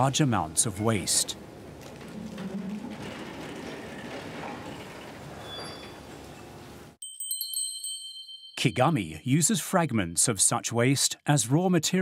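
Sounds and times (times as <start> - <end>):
demolition machinery and debris: 0.0 - 7.0
bright chime: 7.0 - 9.3.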